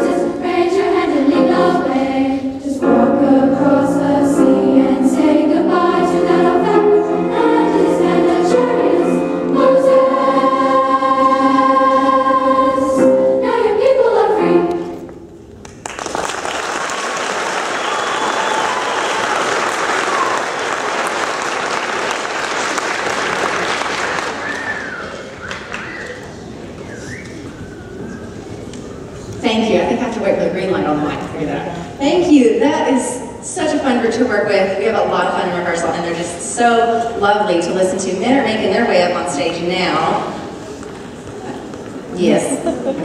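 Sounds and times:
girls' choir singing: 0:00.0 - 0:15.2
audience applauding: 0:15.6 - 0:27.0.

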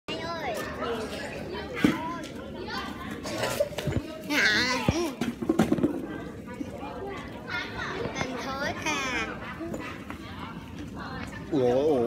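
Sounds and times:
children chattering: 0:00.1 - 0:12.0.

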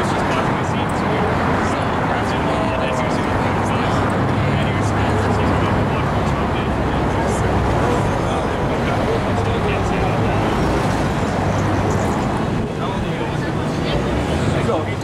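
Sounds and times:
indistinct voices talking: 0:00.0 - 0:15.0
road traffic hum: 0:00.0 - 0:15.0.

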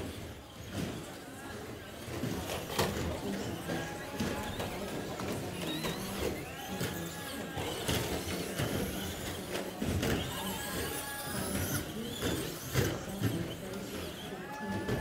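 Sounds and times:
rc truck motors whining: 0:00.0 - 0:15.0.

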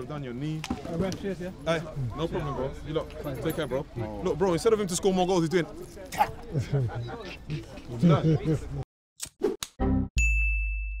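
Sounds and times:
high ringing ding: 0:10.2 - 0:11.0.

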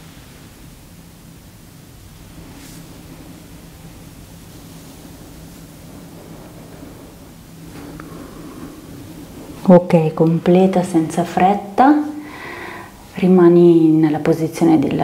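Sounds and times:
hiss: 0:00.0 - 0:13.7
low hum: 0:00.0 - 0:15.0
faint rustle: 0:02.1 - 0:11.0.

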